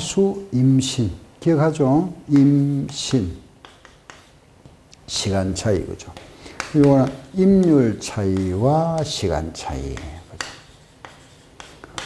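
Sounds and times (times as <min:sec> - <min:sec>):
chalk scratching on chalkboard: 0:02.3 - 0:04.5, 0:05.1 - 0:12.0
chalk tapping on board: 0:02.3 - 0:12.0.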